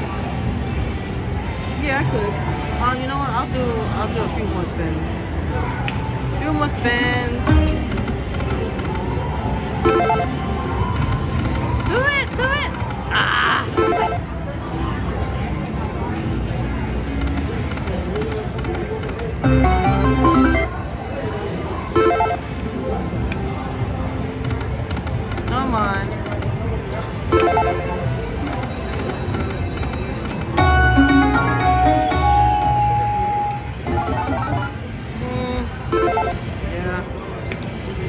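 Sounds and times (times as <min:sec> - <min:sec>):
casino machines din: 0:07.2 - 0:35.2, 0:35.8 - 0:36.7
slot machine held tones: 0:09.8 - 0:10.4, 0:13.7 - 0:14.3, 0:19.4 - 0:21.0, 0:27.3 - 0:35.1, 0:35.9 - 0:36.5
slot machine jingles and chimes: 0:19.4 - 0:21.0, 0:27.3 - 0:35.0.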